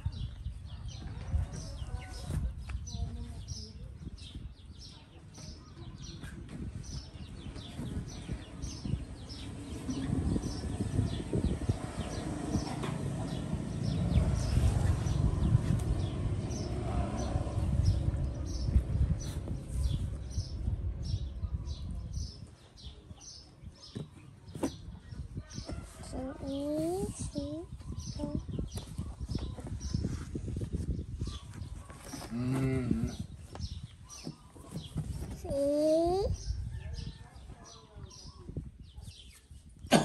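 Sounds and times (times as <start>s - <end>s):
rustling and rumbling: 5.9s - 22.9s, 23.8s - 37.2s.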